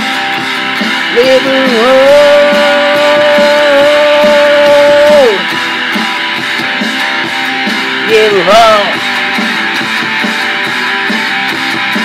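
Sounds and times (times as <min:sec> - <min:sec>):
rock song with electric guitar: 0:00.0 - 0:12.0.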